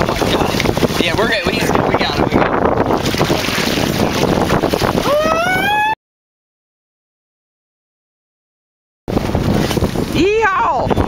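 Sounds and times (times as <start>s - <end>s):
water splashing against hull: 0.0s - 5.7s, 9.1s - 11.0s
wind on microphone: 0.0s - 6.0s, 9.1s - 11.0s
person whooping: 5.0s - 6.0s.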